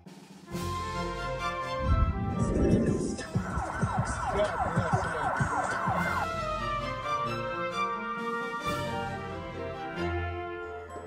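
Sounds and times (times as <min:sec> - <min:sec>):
emergency siren yelping: 0:01.0 - 0:09.4.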